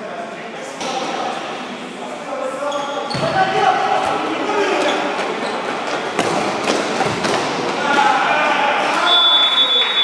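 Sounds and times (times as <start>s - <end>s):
players shouting: 7.7s - 10.0s.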